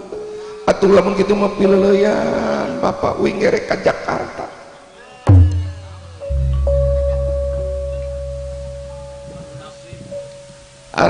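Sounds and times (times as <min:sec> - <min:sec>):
large gong deep hum: 0:05.3 - 0:09.6
higher gong tone ringing: 0:05.3 - 0:09.9.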